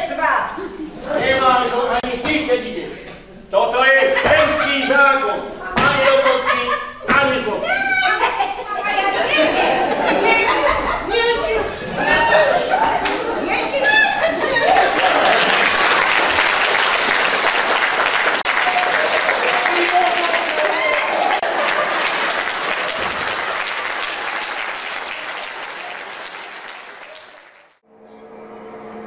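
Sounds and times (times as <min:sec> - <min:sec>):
voices in crowd: 0:00.0 - 0:15.7
audience applauding: 0:09.1 - 0:27.8.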